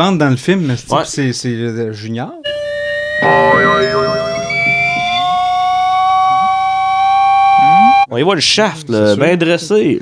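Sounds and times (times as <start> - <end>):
comic tone gliding upward: 3.2 - 5.6.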